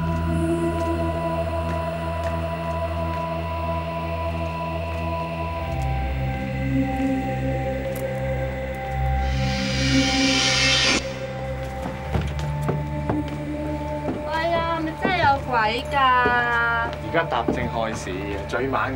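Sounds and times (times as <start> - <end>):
low sustained drones: 0.0 - 16.2
hissing swell: 8.5 - 11.8.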